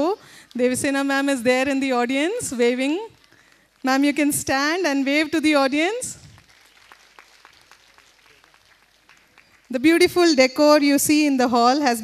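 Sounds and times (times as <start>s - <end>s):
audience clapping: 2.8s - 5.2s, 6.2s - 10.1s.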